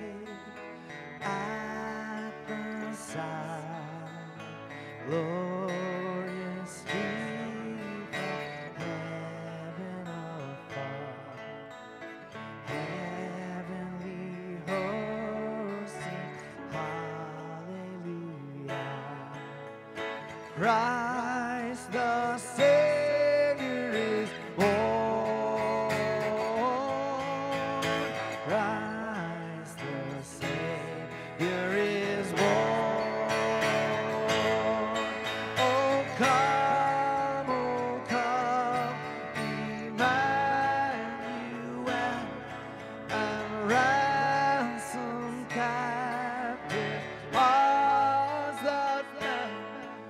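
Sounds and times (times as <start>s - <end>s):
man singing a carol: 0.0s - 11.9s, 12.6s - 50.0s
strummed acoustic guitar: 0.0s - 50.0s.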